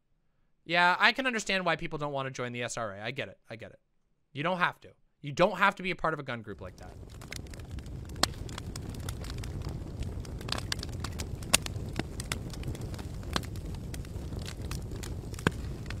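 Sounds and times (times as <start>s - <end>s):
fire crackles and pops: 6.5s - 16.0s
low rumble of flames: 6.5s - 16.0s.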